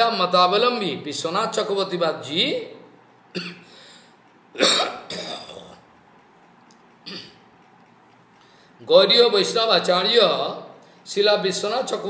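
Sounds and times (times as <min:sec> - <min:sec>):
man coughing: 0:03.3 - 0:03.8, 0:04.6 - 0:05.8, 0:07.1 - 0:07.4.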